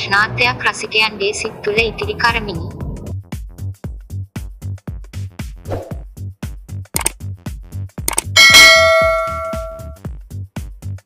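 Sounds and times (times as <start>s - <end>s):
short click: 7.0s - 7.2s
electronic music with steady beat: 8.1s - 10.0s
bright bell ding: 8.4s - 10.0s.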